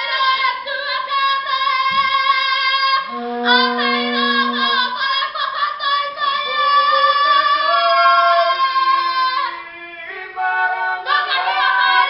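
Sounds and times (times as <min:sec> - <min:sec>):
steady low note: 0:03.1 - 0:05.0
women singing together: 0:08.4 - 0:12.0.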